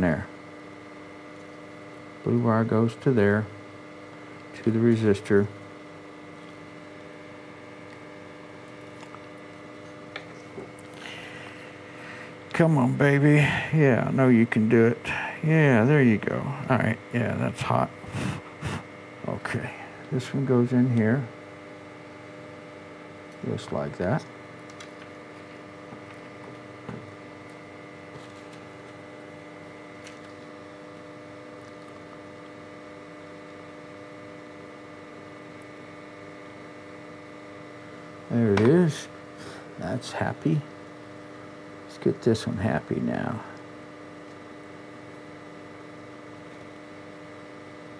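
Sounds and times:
steady tonal hum: 0:00.0 - 0:47.9
faint clicks of soldering: 0:01.2 - 0:02.0, 0:24.2 - 0:29.0.

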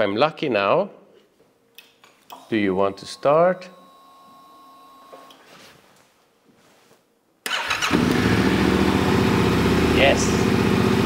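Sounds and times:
motorcycle engine starting and idling: 0:07.5 - 0:11.0.

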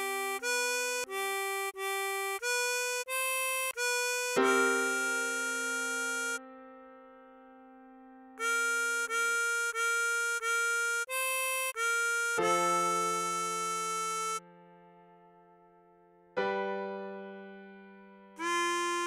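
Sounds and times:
harmonica melody: 0:00.0 - 0:06.4, 0:08.4 - 0:14.4, 0:18.4 - 0:19.0
keyboard chord: 0:00.0 - 0:19.0.

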